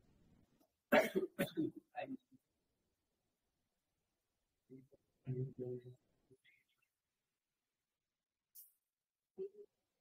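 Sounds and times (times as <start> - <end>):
person coughing: 0.9 - 1.8.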